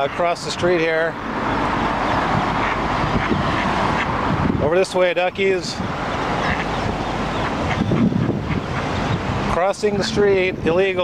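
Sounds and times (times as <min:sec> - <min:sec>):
street traffic: 0:00.0 - 0:11.0
wind on microphone: 0:01.1 - 0:11.0.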